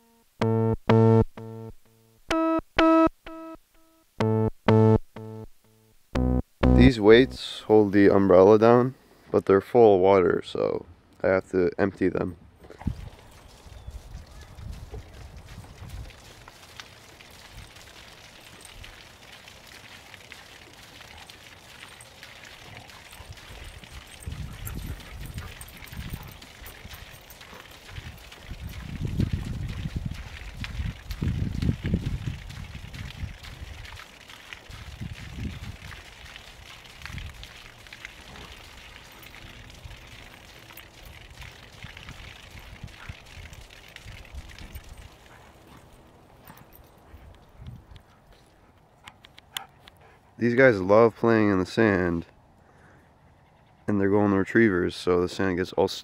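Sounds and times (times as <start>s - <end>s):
water stream splattering on ground: 12.7s - 48.0s.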